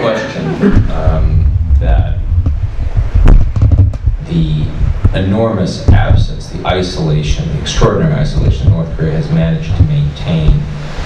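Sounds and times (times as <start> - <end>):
loud low rumble: 0.5 - 11.0.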